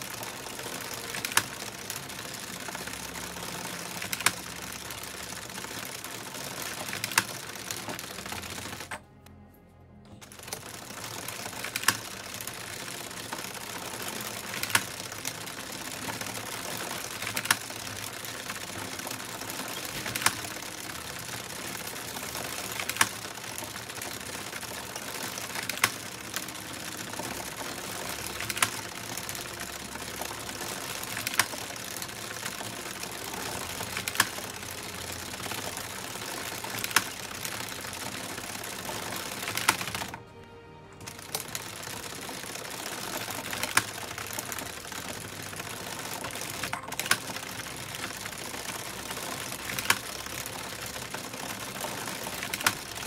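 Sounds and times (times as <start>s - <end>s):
knitting machine needles clattering: 0.0s - 9.3s, 10.1s - 53.0s.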